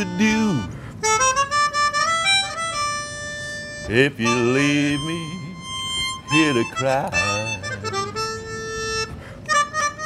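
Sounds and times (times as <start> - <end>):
melodica blues fill: 0.0 - 10.0.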